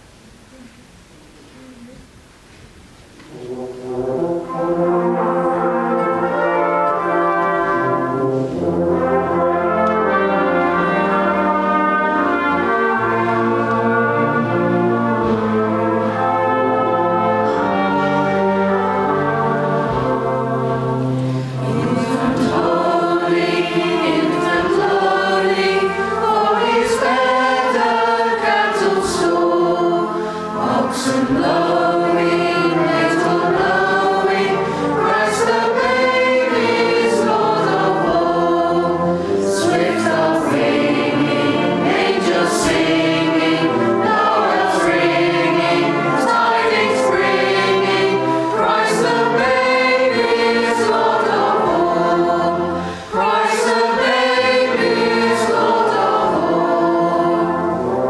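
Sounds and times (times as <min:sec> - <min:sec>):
choir singing a carol: 0:03.3 - 0:58.0
singers breathing: 0:21.0 - 0:21.8, 0:30.1 - 0:30.6, 0:34.6 - 0:35.0, 0:48.2 - 0:48.6, 0:52.7 - 0:53.2.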